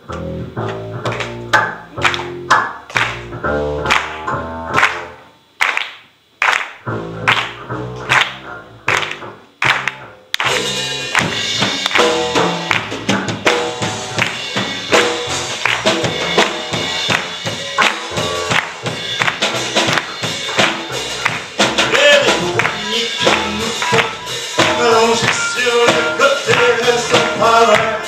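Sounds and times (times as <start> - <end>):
double bass plucked notes: 0.0 - 5.4, 6.8 - 28.0
drums and cymbals: 10.4 - 28.0.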